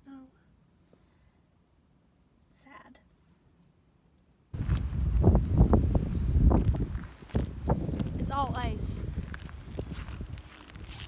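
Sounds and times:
wind rumbling on microphone: 4.6s - 11.0s
footsteps on icy gravel: 6.4s - 11.0s.

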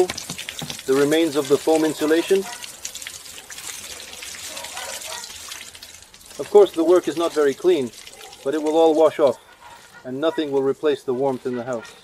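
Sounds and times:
water running through hose: 0.0s - 12.0s.

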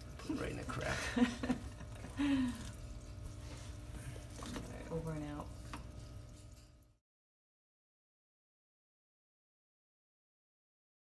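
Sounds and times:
low steady hum: 0.0s - 7.0s
person laughing: 0.8s - 2.7s.

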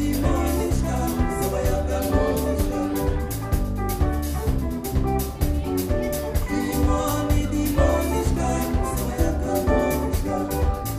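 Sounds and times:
bass guitar: 0.0s - 10.9s
drum kit: 0.0s - 10.9s
electric guitars: 0.0s - 10.9s.

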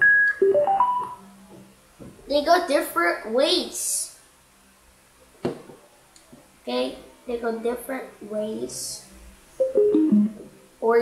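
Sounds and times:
rising electronic notes: 9.6s - 10.4s.

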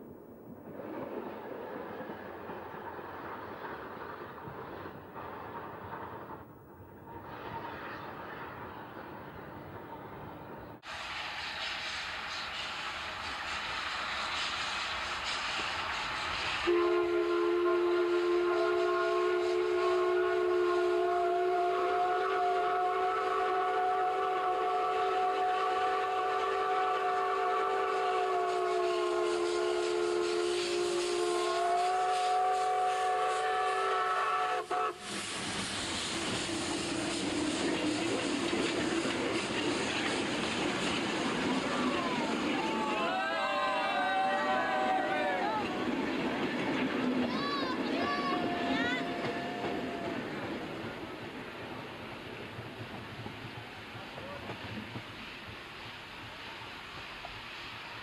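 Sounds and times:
train passing: 0.0s - 58.0s
steam locomotive whistle: 10.8s - 39.2s, 41.5s - 46.0s.

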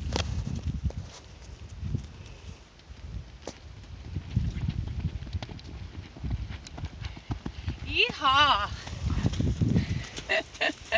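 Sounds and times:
horse hooves thudding in sand: 0.0s - 10.9s.

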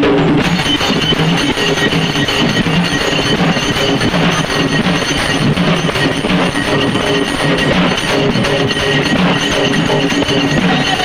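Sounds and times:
loud dense drumming: 0.0s - 11.0s.

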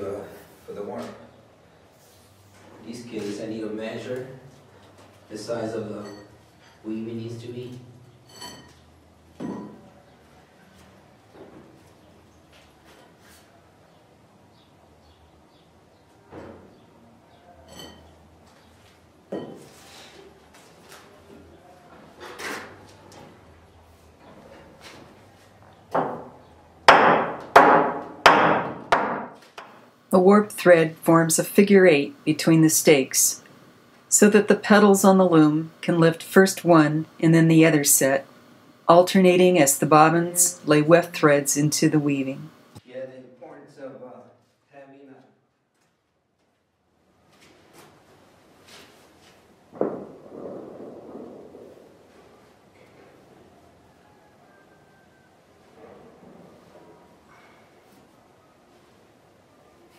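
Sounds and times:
sharp knock: 49.8s - 51.4s.

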